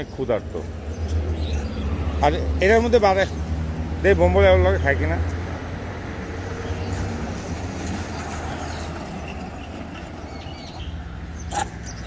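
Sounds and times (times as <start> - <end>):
background traffic rumble: 0.0 - 12.0.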